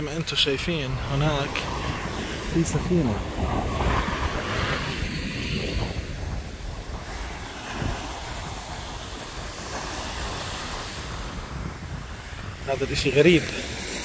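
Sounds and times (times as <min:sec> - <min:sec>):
surf washing onto beach: 0:00.0 - 0:14.0
wind rumbling on microphone: 0:00.0 - 0:14.0.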